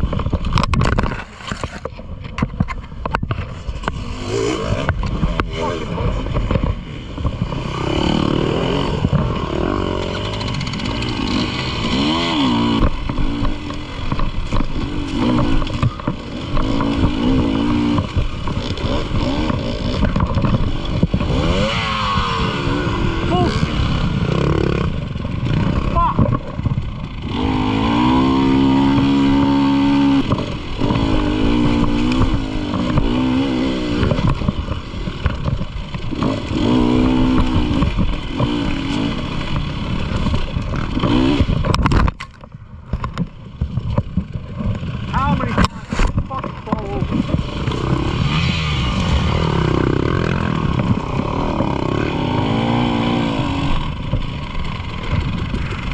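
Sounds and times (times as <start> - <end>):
dirt bike engine revving: 3.5 - 42.1, 44.1 - 55.9.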